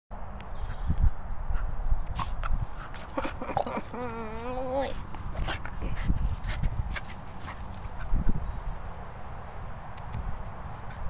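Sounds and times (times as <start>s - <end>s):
paws running on grass: 5.0s - 9.0s.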